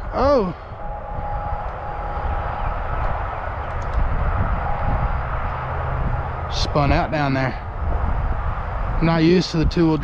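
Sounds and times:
faint thin whine: 0.0s - 10.0s
wind buffeting microphone: 0.0s - 10.0s.

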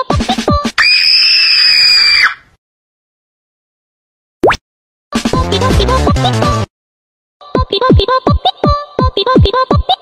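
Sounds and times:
high-pitched shriek: 0.8s - 2.5s.

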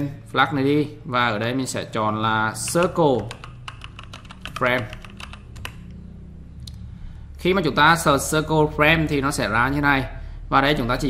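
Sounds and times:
low steady hum: 0.0s - 11.0s
keyboard typing: 2.6s - 6.0s.

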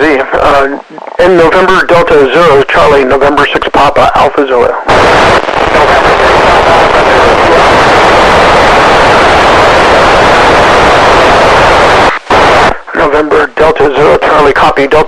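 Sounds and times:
radio static hiss: 0.0s - 15.0s.

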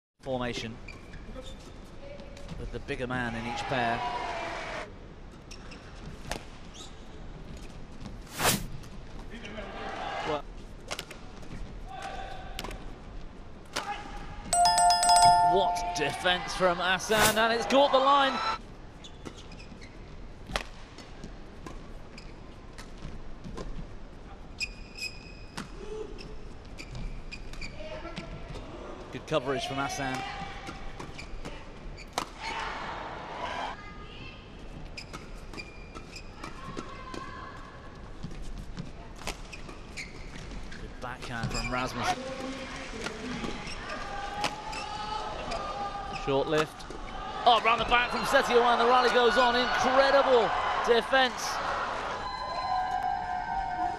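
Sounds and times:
shoe squeaking on court: 39.4s - 40.8s, 41.4s - 41.8s
shoes squeaking on court: 41.4s - 41.8s.

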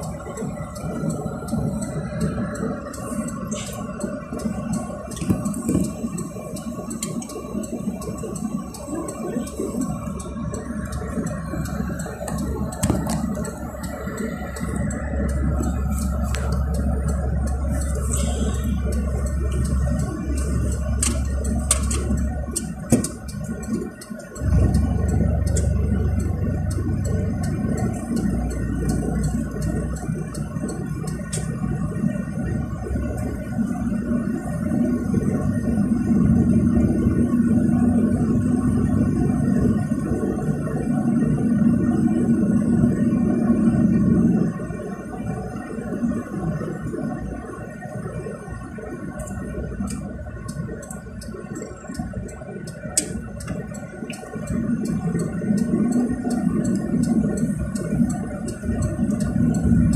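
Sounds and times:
car engine and road drone: 0.0s - 59.9s
small rattling clicks: 49.2s - 59.9s.

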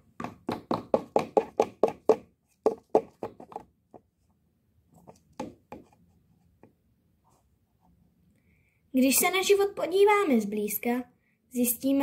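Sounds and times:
plastic toy knocking on tabletop: 5.4s - 5.9s.

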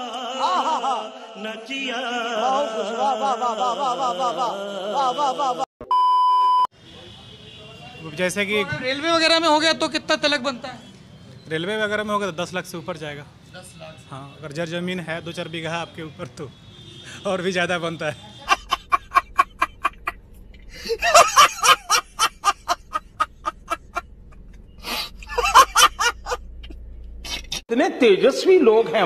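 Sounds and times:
chanted vocal music: 0.0s - 5.7s
man laughing hard: 3.3s - 5.7s, 18.4s - 20.2s, 20.8s - 24.1s, 24.8s - 27.6s
faint outdoor background noise: 6.7s - 29.0s.

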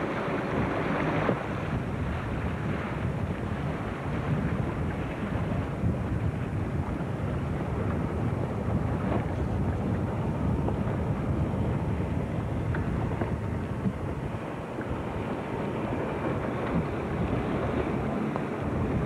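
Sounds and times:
boat motor rumbling: 0.0s - 19.0s
wind buffeting microphone: 0.0s - 19.0s.

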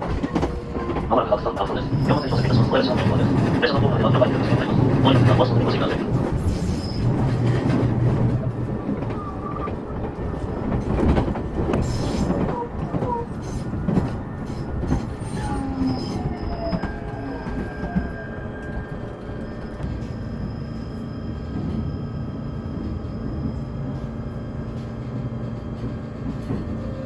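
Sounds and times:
train car rumble: 0.0s - 27.0s
faint high squeals: 15.2s - 22.0s.

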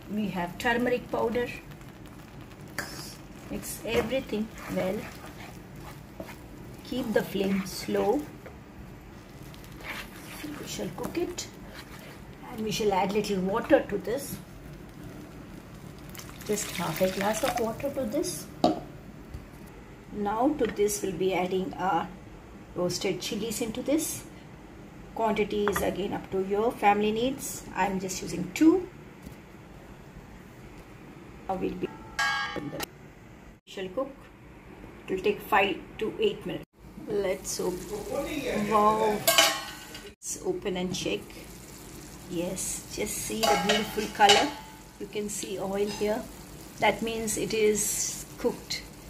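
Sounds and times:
spatula scraping pan: 3.4s - 8.4s, 9.3s - 12.3s, 43.2s - 46.6s.

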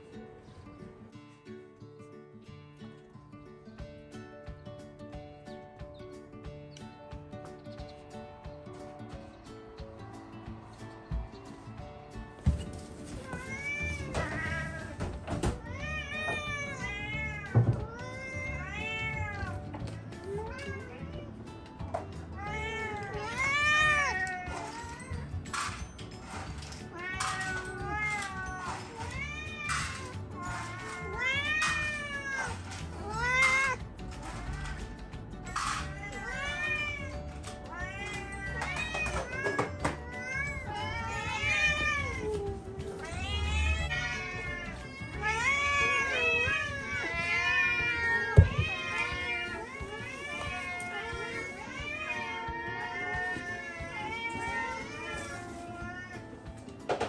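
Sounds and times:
cats meowing: 7.8s - 56.8s.

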